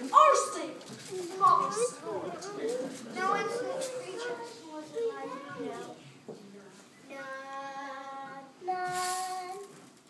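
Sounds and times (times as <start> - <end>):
children singing held notes: 1.3 - 6.1, 7.1 - 9.8.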